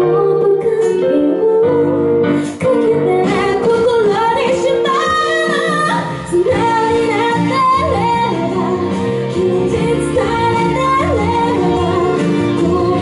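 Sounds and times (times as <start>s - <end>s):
woman singing into a microphone: 0.0s - 13.0s.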